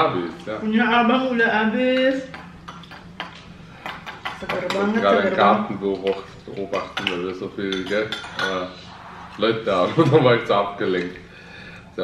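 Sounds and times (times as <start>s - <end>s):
people talking: 4.4s - 8.8s, 9.4s - 11.2s
spoons clinking on ceramic bowls: 6.0s - 8.6s.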